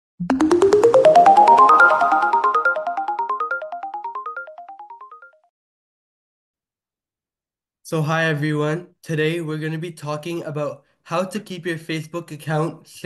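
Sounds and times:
bright musical jingle notes: 0.2 - 5.5.

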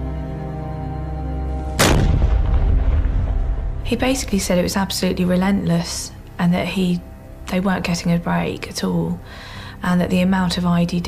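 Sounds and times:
background music: 0.0 - 11.0
sharp explosion: 1.8 - 4.3
long low rumble: 1.8 - 6.4.

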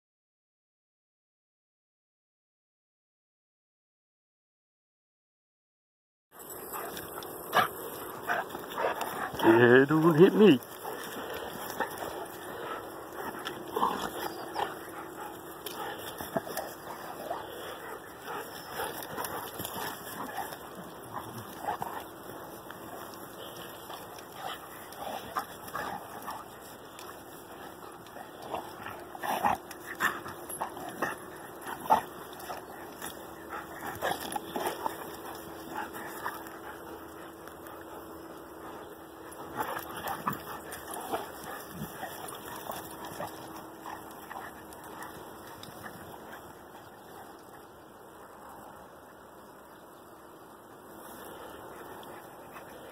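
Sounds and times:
dogs play-fighting vocalising: 6.5 - 9.6, 10.6 - 47.7.

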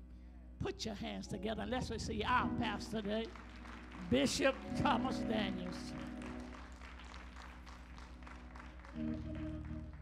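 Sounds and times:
low held organ chord: 1.2 - 10.0
faint scattered hand clapping: 3.0 - 10.0.

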